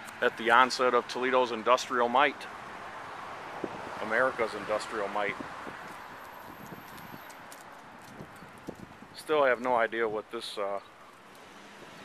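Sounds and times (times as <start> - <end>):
steady outdoor hiss: 0.0 - 12.0
footsteps on pavement: 3.6 - 10.0.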